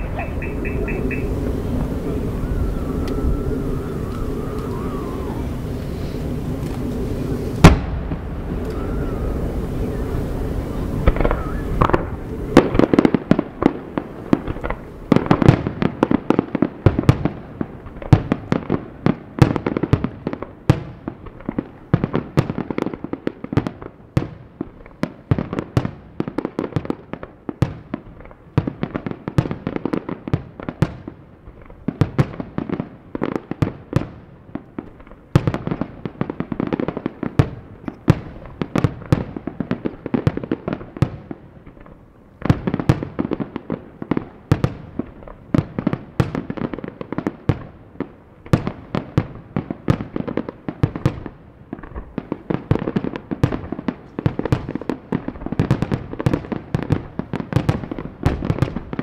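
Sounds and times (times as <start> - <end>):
fireworks bursting: 0.0 - 59.0.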